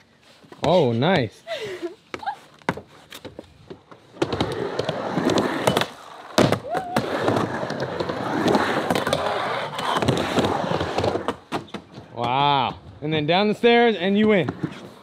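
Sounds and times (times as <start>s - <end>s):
skateboard wheels rolling on concrete: 0.0s - 15.0s.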